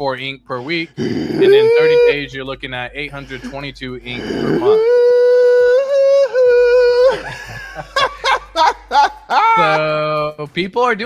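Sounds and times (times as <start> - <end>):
person's high excited ooh: 1.4 - 2.2, 4.3 - 7.3.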